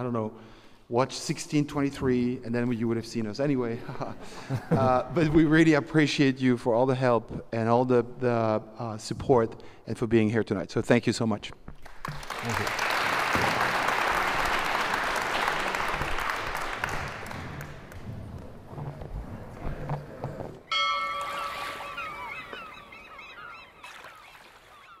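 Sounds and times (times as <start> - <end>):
audience applause: 11.8 - 18.0
held tones with gliding notes: 20.7 - 24.5.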